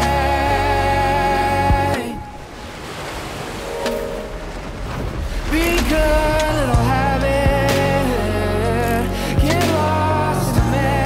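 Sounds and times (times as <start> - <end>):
waves breaking: 1.5 - 9.8.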